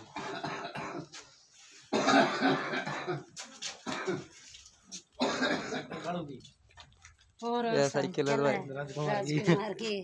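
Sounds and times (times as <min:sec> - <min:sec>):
person coughing: 0:01.9 - 0:04.3, 0:05.2 - 0:06.1.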